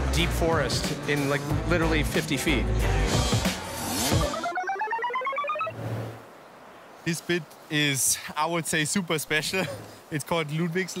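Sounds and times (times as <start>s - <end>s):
rising electronic beeps: 3.8s - 5.8s.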